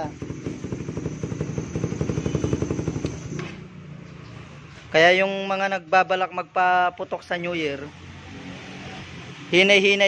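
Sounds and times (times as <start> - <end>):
motorcycle engine with open exhaust: 0.0 - 4.8.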